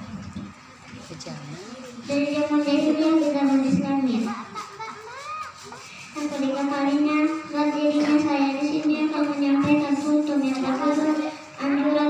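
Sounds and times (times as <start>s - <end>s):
distant children's voices: 0.6s - 12.0s
girl speaking into a microphone: 1.0s - 12.0s.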